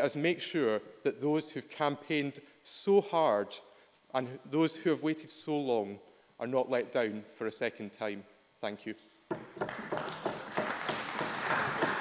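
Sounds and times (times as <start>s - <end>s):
people clapping: 9.4s - 12.0s.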